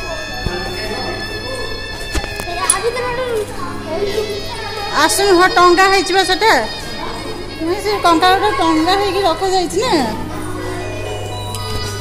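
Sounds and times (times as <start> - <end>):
background music: 0.0 - 12.0
children chattering and calling: 0.0 - 12.0.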